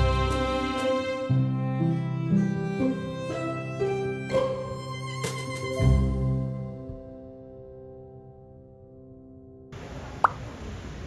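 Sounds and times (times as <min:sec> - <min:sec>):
soft background music: 0:00.0 - 0:09.8
outdoor ambience: 0:09.7 - 0:11.0.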